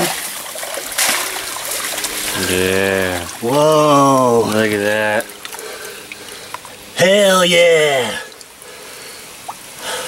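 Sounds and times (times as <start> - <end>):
water splashing and trickling: 0.0 - 10.0.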